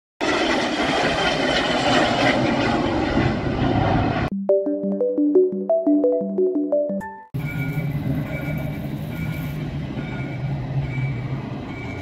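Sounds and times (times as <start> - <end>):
jet engines at takeoff: 0.2 - 4.3, 7.4 - 12.0.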